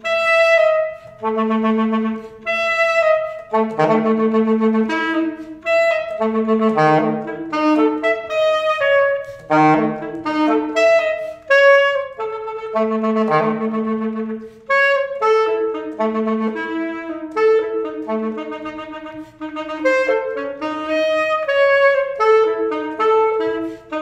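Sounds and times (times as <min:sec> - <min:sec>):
alto saxophone playing: 0:00.0 - 0:24.0
saxophonist breaths: 0:11.2 - 0:11.5, 0:23.6 - 0:23.9.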